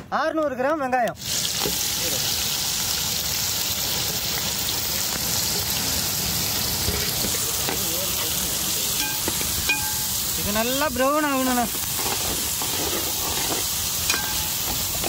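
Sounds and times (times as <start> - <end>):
onions sizzling in hot oil: 1.2 - 15.0.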